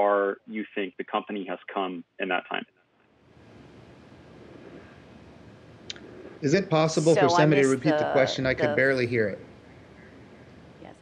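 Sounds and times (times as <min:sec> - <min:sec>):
faint audio line hiss: 0:00.0 - 0:11.0.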